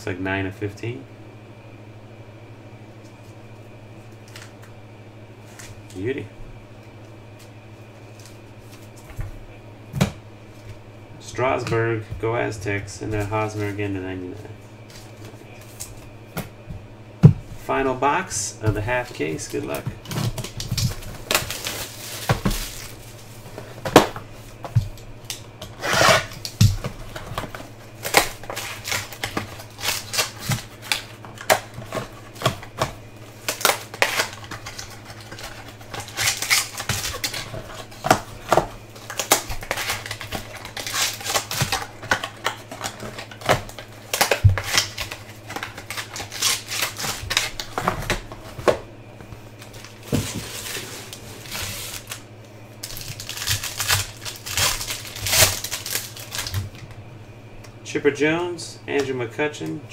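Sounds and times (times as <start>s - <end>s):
wrapper rustling and crinkling: 18.8s - 48.8s, 49.5s - 56.8s.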